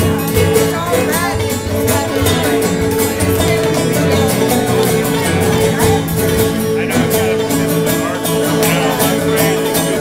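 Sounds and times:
banjo: 0.0 - 10.0
picked guitar: 0.0 - 10.0
upright bass: 0.0 - 10.0.

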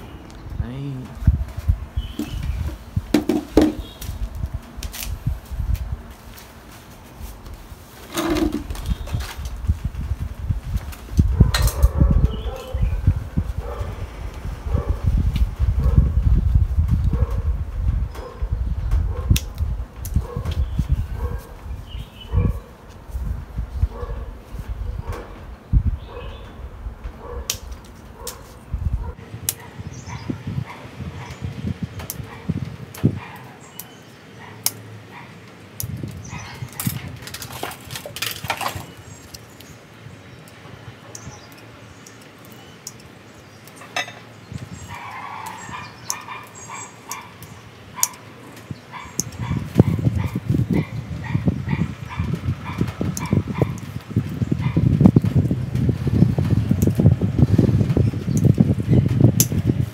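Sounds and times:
leaf rustle: 0.0 - 15.7
low rumbling noise: 0.0 - 33.2.

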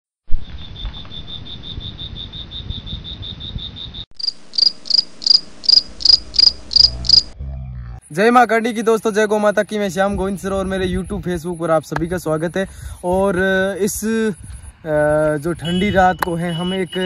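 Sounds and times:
crickets chirping: 0.3 - 7.4
low hum: 4.2 - 8.2.

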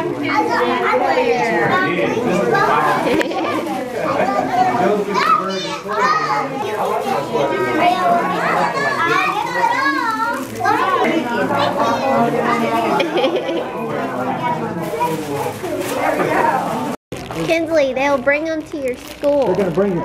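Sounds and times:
young children talking excitedly: 0.0 - 16.8, 17.4 - 20.0.

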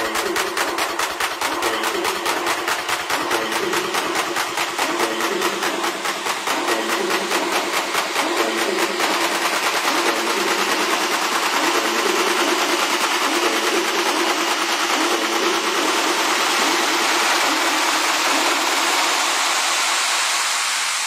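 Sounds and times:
high percussive pulse: 0.0 - 21.0.

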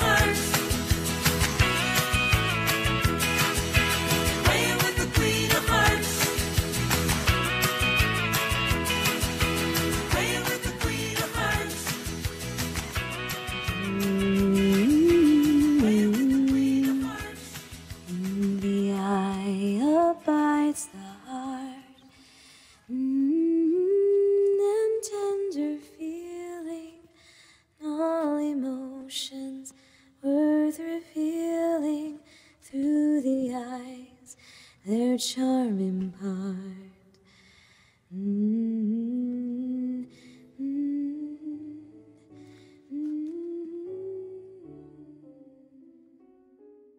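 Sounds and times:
woman humming a melody: 13.8 - 17.2, 42.9 - 45.9
breaths: 22.1 - 22.9, 27.1 - 27.8, 29.7 - 30.2, 32.2 - 32.6, 34.3 - 34.9, 37.1 - 38.2, 40.0 - 40.6, 42.2 - 42.9.

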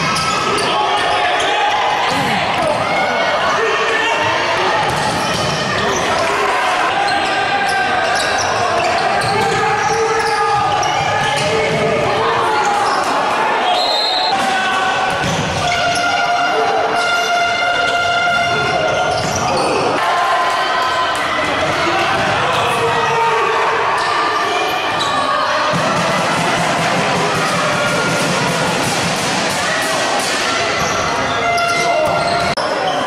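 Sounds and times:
people calling out: 0.0 - 28.5.

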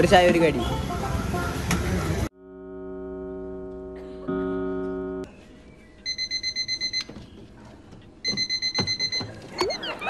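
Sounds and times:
alarm clock beeping rapidly: 6.1 - 7.1, 8.2 - 9.3.

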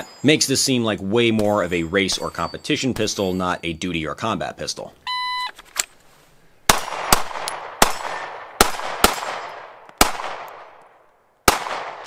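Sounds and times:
pistol shots with echo: 6.7 - 12.0.

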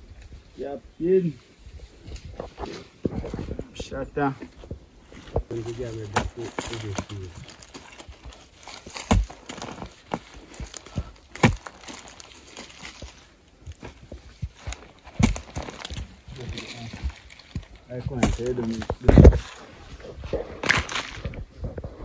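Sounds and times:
earth and dry leaves rustling: 0.0 - 22.0
digging tool chopping into soil: 5.4 - 19.5.

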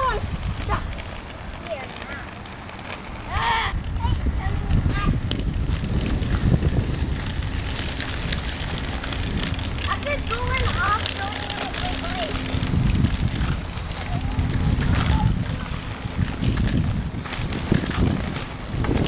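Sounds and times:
children's voices calling out: 0.0 - 2.4, 3.0 - 5.3, 9.6 - 16.6
wind rumbling: 0.0 - 19.0
child shouting: 3.3 - 5.2, 14.1 - 15.5.

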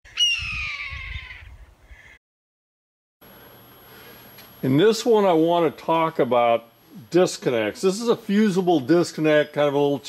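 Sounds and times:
hawk screaming: 0.1 - 2.2.

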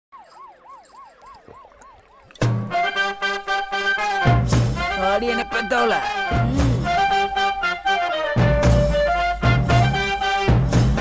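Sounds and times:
siren-like wail: 0.1 - 3.1.

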